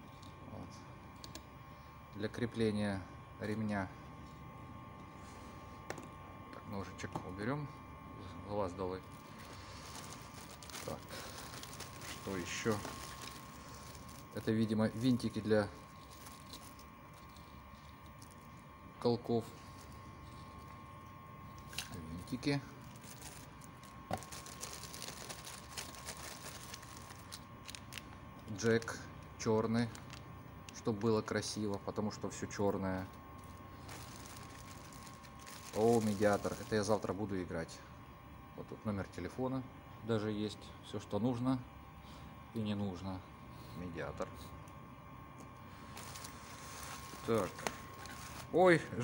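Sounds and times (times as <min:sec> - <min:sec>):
plastic bags crinkling: 0:09.1 - 0:18.5, 0:21.7 - 0:29.0, 0:29.6 - 0:30.3, 0:33.4 - 0:37.1, 0:45.8 - 0:48.6.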